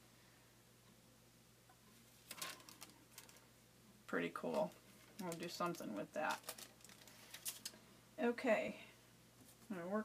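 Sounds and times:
paper crackling: 2.3 - 3.4, 4.4 - 7.8.

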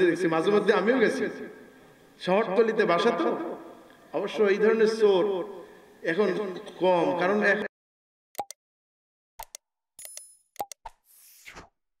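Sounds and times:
quick click-pops: 9.4 - 11.0.

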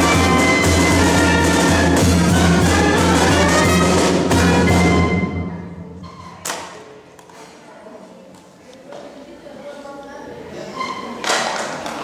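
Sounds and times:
brass band playing: 0.0 - 6.2.

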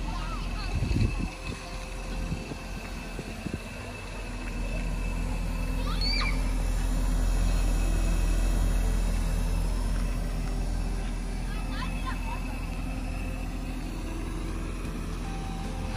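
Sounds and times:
car engine idling: 0.0 - 15.9.

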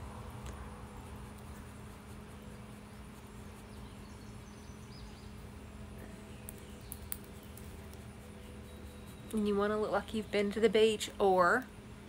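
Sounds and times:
steady low hum: 0.0 - 12.0
faint high bird chirps: 2.3 - 10.6.

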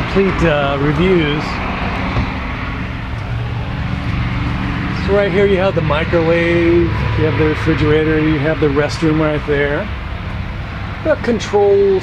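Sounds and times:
freeway traffic drone: 0.0 - 12.0.

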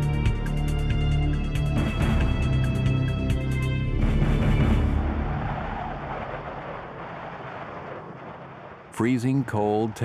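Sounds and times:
blizzard wind blowing: 0.0 - 10.0.

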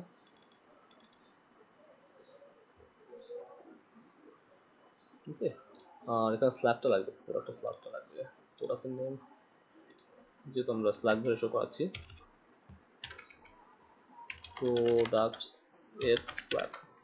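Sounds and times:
person speaking: 14.3 - 17.0.

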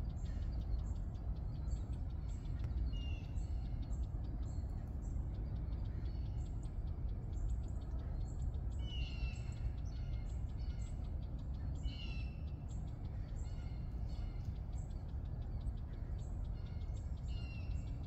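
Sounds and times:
birds chirping: 0.0 - 18.0.

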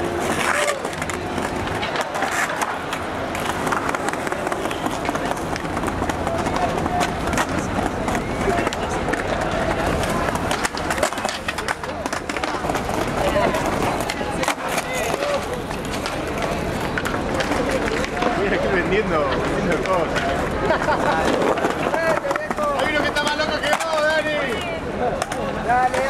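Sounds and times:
crowd talking: 0.0 - 26.0
skateboard clacks: 0.0 - 26.0
skateboard rolling on tiles: 0.0 - 26.0.

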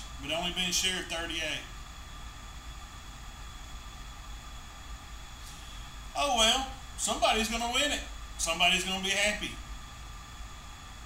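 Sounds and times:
faint high steady whine: 0.0 - 11.0.

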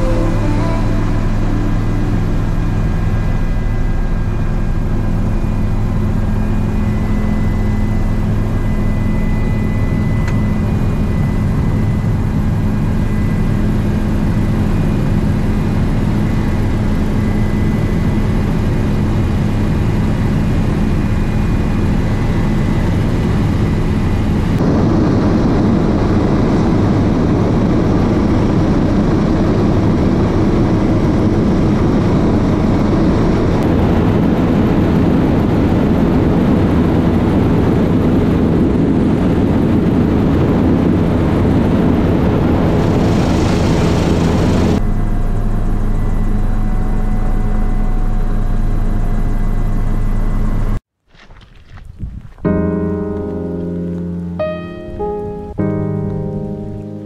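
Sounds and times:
helicopter engine and rotor drone: 0.0 - 50.8.

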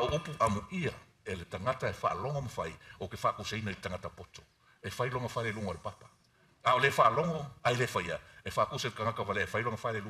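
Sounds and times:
man preaching: 0.0 - 10.0.

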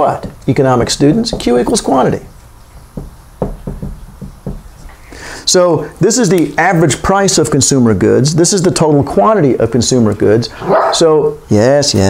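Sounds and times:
marker tapping and scratching whiteboard: 0.2 - 5.0.

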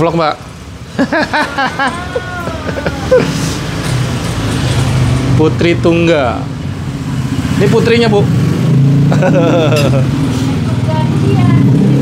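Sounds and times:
street noise: 0.0 - 12.0
vehicle engine humming: 0.4 - 12.0.

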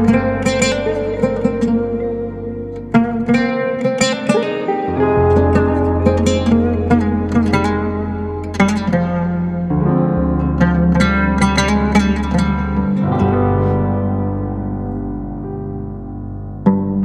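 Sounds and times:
instrumental jazz-folk ensemble: 0.0 - 17.0
long held bass notes: 0.0 - 17.0
plucked melody notes: 0.0 - 17.0.

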